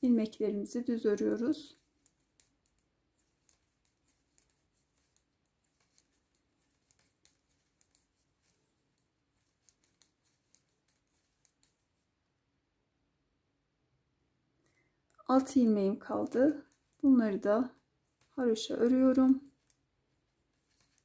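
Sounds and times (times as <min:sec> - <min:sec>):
knitting needles clicking: 0:00.8 - 0:12.0, 0:14.6 - 0:19.9, 0:20.5 - 0:21.0.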